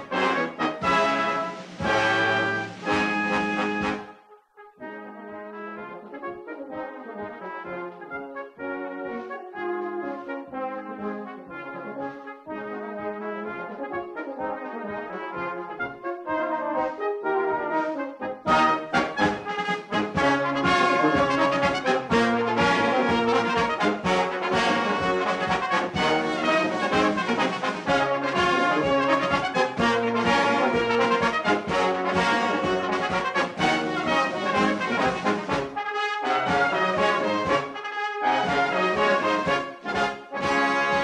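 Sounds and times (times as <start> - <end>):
brass band playing: 0.0 - 41.0.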